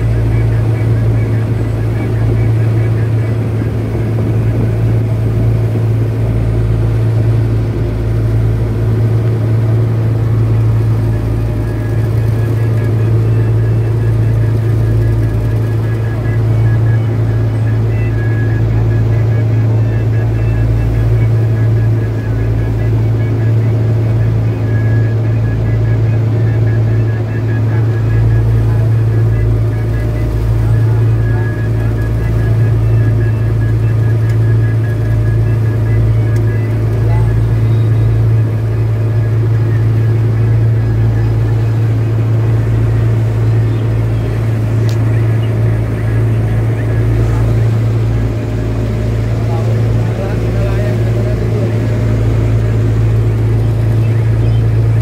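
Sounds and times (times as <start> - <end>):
boat engine droning: 0.0 - 55.0.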